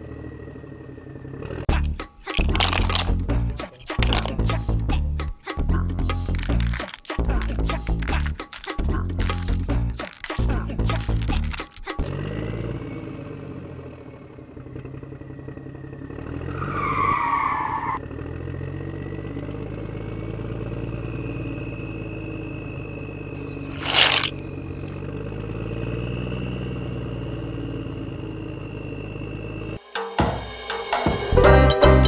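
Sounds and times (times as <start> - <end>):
vehicle engine running: 0.0 - 29.8.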